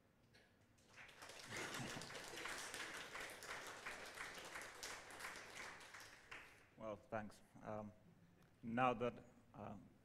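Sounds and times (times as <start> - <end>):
audience applauding: 0.8 - 6.6.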